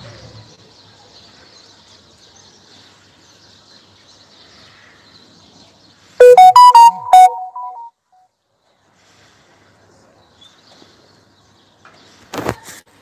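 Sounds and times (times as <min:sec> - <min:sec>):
faint outdoor background: 0:00.0 - 0:13.0
electronic chime: 0:06.2 - 0:07.9.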